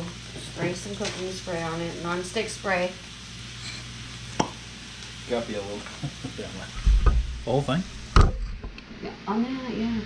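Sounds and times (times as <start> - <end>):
meat frying in a pan: 0.0 - 10.0.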